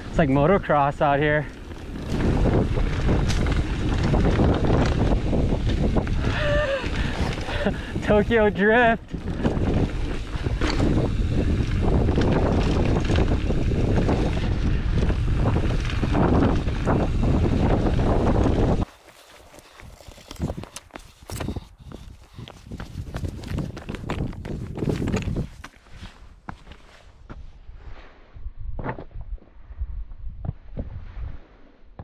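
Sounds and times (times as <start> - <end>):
wind buffeting microphone: 0.0 - 18.9, 19.6 - 25.7
tyres rolling over dirt: 0.2 - 21.6.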